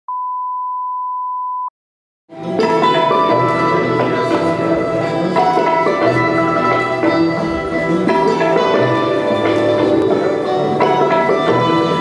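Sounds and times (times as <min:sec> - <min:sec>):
steady pure test tone beep: 0:00.1 - 0:01.7.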